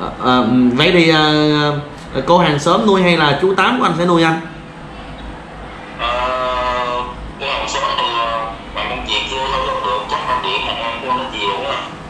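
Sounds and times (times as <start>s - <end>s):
man's voice through phone speaker: 6.0s - 12.0s.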